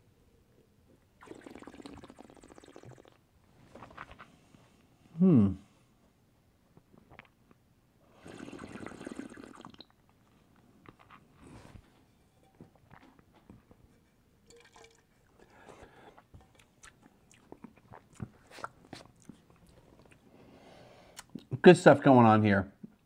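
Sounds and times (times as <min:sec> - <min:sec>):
person slurping wine: 0:08.1 - 0:09.9.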